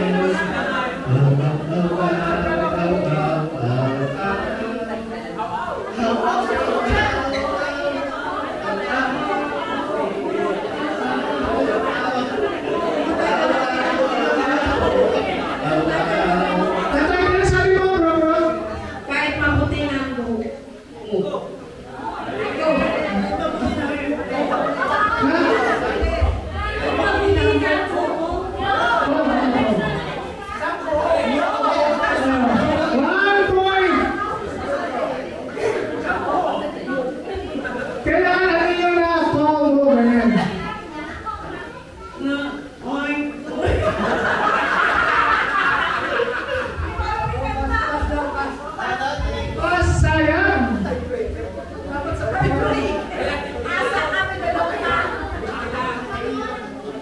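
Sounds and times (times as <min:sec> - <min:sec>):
crowd chatter: 0:00.0 - 0:57.0
many people talking at once: 0:00.0 - 0:57.0.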